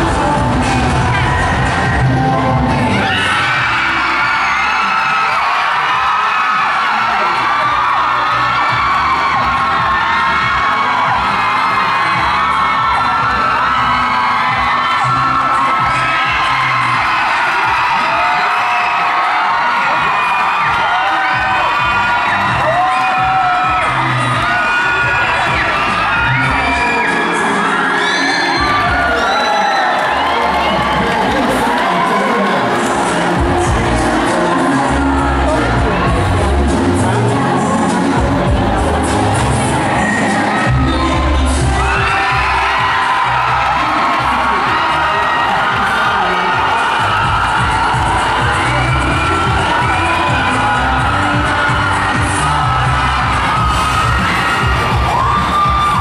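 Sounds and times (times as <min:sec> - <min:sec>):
audience cheering and screaming: 0:00.0 - 0:56.0.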